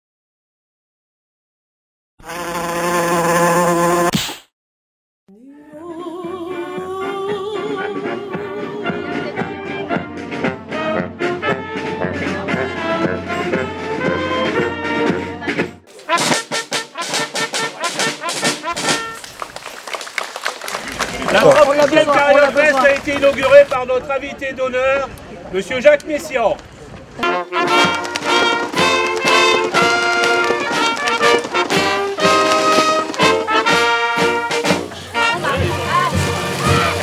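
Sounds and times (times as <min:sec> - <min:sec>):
fly-like buzzing: 0:02.2 - 0:04.2
brass band playing chords: 0:07.7 - 0:19.4, 0:27.2 - 0:37.0
murmur of voices: 0:33.8 - 0:37.0.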